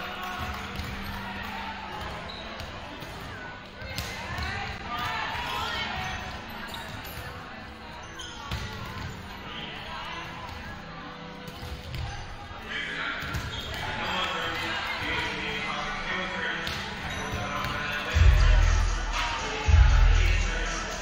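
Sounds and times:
volleyballs hit and bouncing: 0.0 - 7.5, 8.2 - 15.5, 16.6 - 18.3
players calling and chatter: 0.0 - 21.0.

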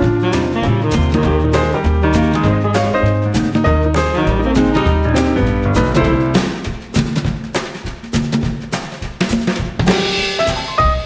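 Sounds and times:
snare and bass drum strikes: 0.0 - 11.0
swing music: 0.0 - 11.0.

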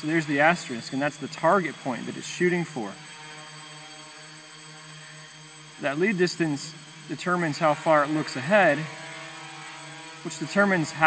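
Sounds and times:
quadcopter propellers humming: 0.0 - 11.0.

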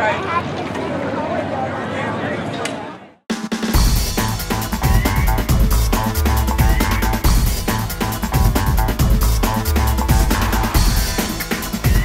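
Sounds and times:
voices: 0.0 - 3.2
outdoor background noise: 0.0 - 3.3
music with heavy beat: 3.3 - 12.0.

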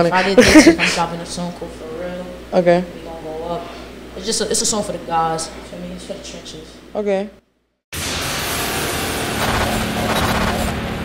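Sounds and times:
dense rush of noise: 8.0 - 11.0.

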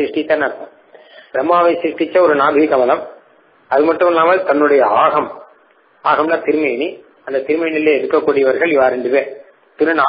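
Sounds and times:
man lecturing: 0.0 - 10.0.

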